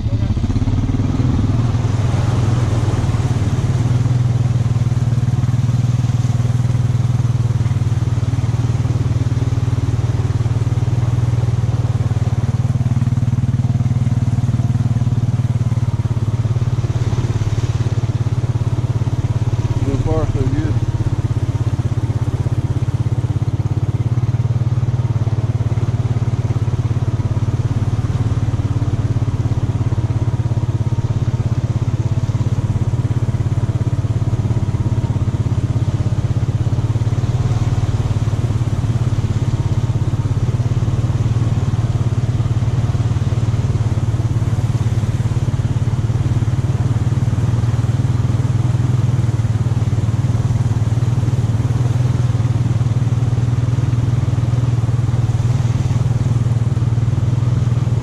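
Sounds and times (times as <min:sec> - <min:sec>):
atv engine running: 0:00.0 - 0:58.0
water sloshing and splashing: 0:00.0 - 0:58.0.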